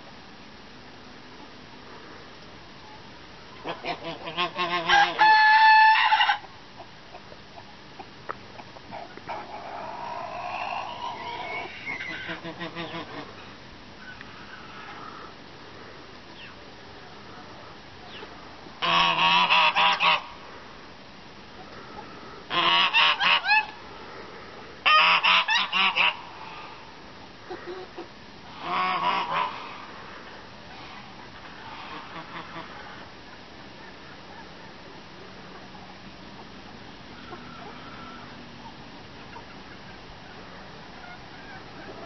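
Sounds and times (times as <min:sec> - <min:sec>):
geese honking: 0:03.5 - 0:06.5, 0:08.9 - 0:15.3, 0:18.1 - 0:20.4, 0:21.9 - 0:23.8, 0:24.8 - 0:26.9, 0:27.5 - 0:30.0, 0:30.7 - 0:33.1, 0:37.1 - 0:42.0.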